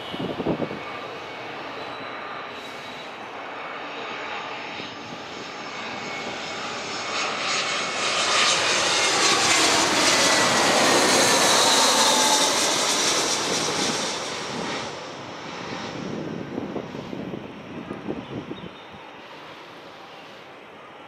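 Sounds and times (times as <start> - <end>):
jet airliner passing overhead: 0.0 - 21.0.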